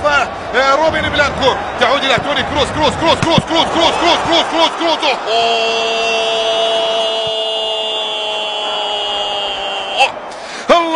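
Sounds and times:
crowd noise: 0.0s - 10.9s
commentator's drawn-out goal shout: 0.2s - 10.9s.

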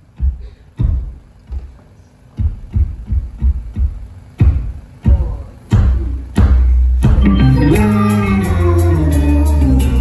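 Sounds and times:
kick drum and bass hits: 0.2s - 1.7s, 2.4s - 7.3s.

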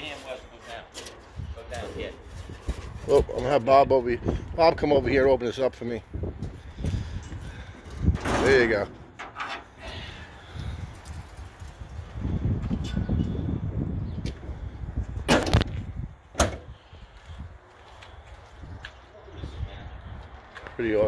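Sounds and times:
metal hood unlatched and raised: 8.2s - 9.8s.

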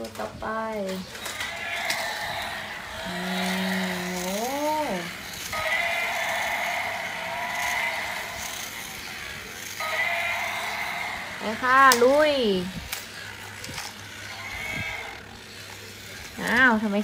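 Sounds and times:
toy motor and gears whirring: 0.0s - 17.0s.

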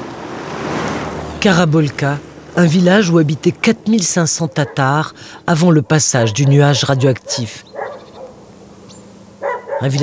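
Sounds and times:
quiet outdoor ambience: 0.0s - 10.0s
dog barking: 4.4s - 5.1s, 7.2s - 8.4s, 9.4s - 10.0s.

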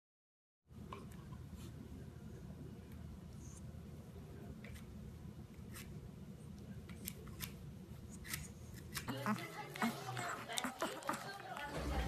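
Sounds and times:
person speaking: 9.1s - 12.0s.

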